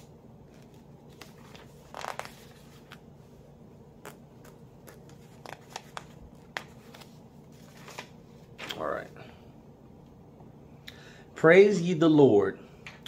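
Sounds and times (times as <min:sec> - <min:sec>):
thin paper pages rustling: 0:00.5 - 0:03.0, 0:04.0 - 0:08.8.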